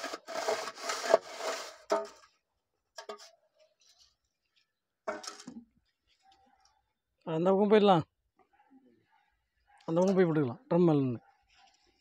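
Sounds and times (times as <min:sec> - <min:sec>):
straight edge scraping wet mortar: 0:00.0 - 0:02.3.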